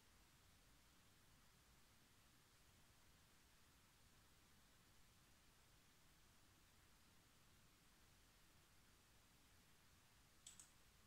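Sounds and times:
computer mouse clicks: 10.4s - 10.8s.

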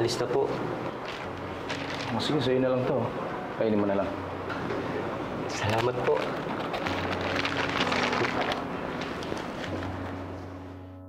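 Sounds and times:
rustling handling noise: 0.5s - 2.4s, 5.5s - 10.2s.

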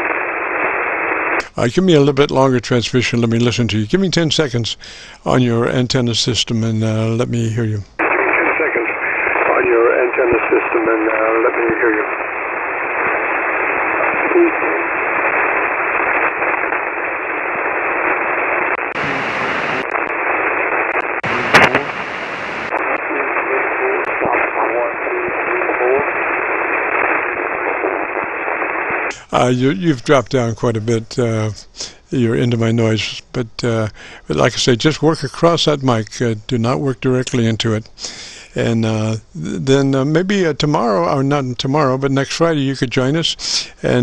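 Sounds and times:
radio band noise hiss: 0.0s - 44.0s
weak radio voice: 1.4s - 12.2s, 13.0s - 15.4s, 18.9s - 20.2s, 20.9s - 28.2s, 28.9s - 44.0s.

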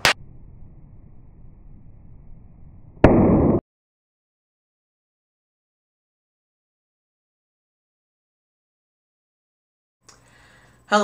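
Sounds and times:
noisy blast: 0.0s - 3.6s
object striking pavement: 3.0s - 3.6s.

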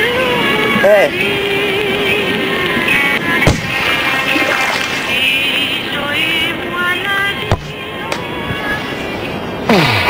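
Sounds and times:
football kicked with thump: 3.5s - 3.8s, 7.5s - 7.8s.

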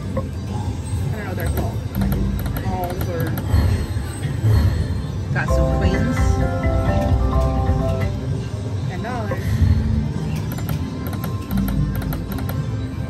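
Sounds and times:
casino background din: 0.0s - 8.4s
slot machine electronic music: 5.5s - 8.8s.

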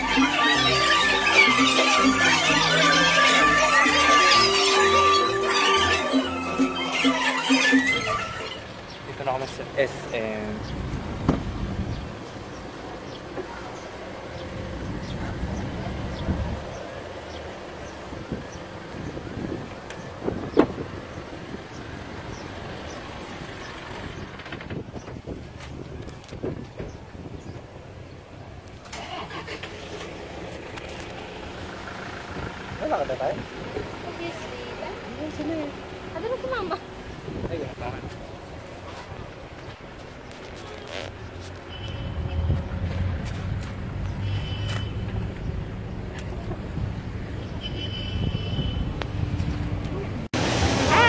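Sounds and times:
low rumble of vehicles: 0.0s - 51.0s
wind rumbling on microphone: 17.9s - 28.8s, 37.0s - 41.4s, 45.1s - 50.8s.

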